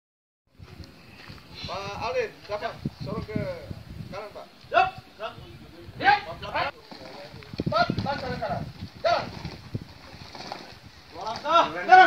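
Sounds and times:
open-air background noise: 0.5 - 12.0
man calling out: 4.7 - 5.1, 11.4 - 12.0.

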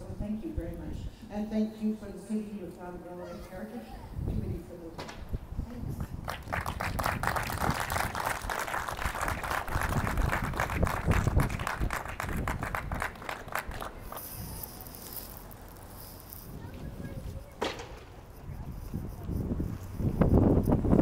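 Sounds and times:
wind rumble on microphone: 4.0 - 14.9, 16.4 - 21.0
crowd clapping: 6.2 - 14.4.

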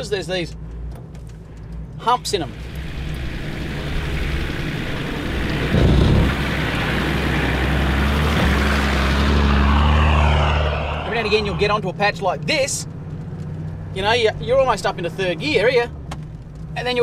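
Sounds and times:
vehicle engine running slowly: 2.5 - 8.8.

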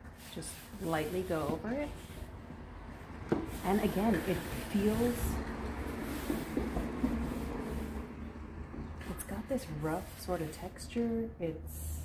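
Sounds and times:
hands rubbing on wooden table: 0.2 - 2.3, 3.4 - 8.0.

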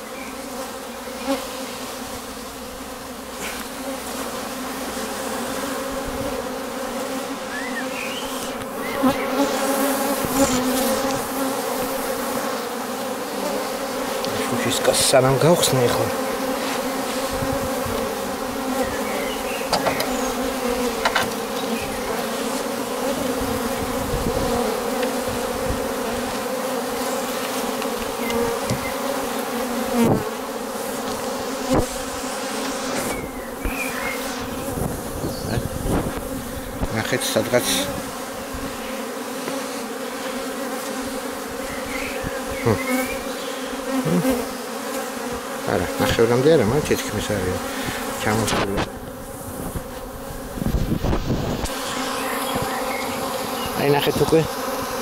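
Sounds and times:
bees buzzing: 0.0 - 55.0.

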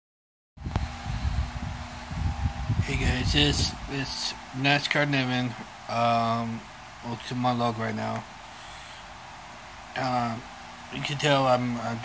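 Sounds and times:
room hum: 0.6 - 12.0.

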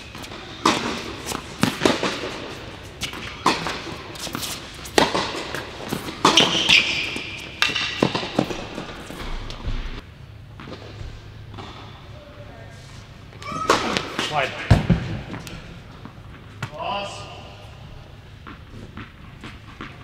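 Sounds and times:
racket hitting tennis ball: 0.0 - 9.7
tennis ball bouncing: 0.1 - 9.2.

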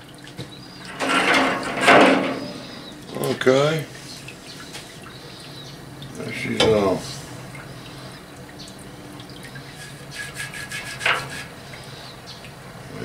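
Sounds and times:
liquid dripping and splashing: 0.0 - 12.9.

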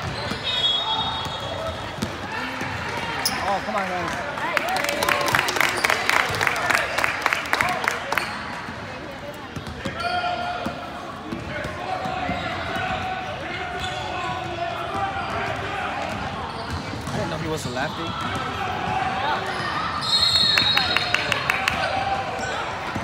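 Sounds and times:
spectators' voices: 0.0 - 23.0
basketball bouncing on court: 1.1 - 3.1, 9.5 - 10.0, 13.8 - 19.6.

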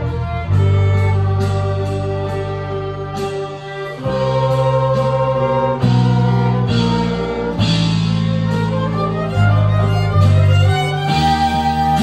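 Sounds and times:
deep sustained bass: 0.0 - 12.0
electric guitars: 0.0 - 12.0
flute: 0.0 - 12.0
keyboard: 0.0 - 12.0
violins: 0.0 - 12.0.

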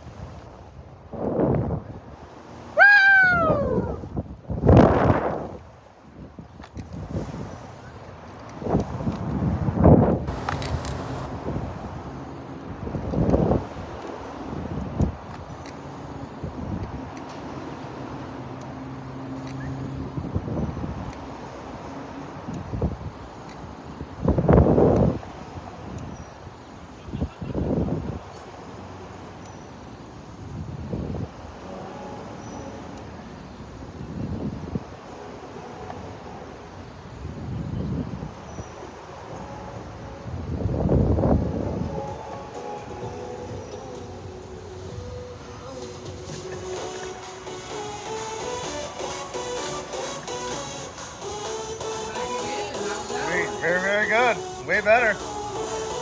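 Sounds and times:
wind buffeting microphone: 0.0 - 17.5, 19.6 - 28.4, 30.3 - 31.6, 33.6 - 35.2, 36.9 - 47.2
person laughing: 46.2 - 47.1.

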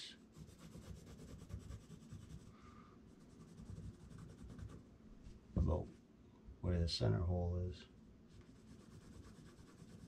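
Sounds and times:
pen scratching on board: 0.4 - 2.5.

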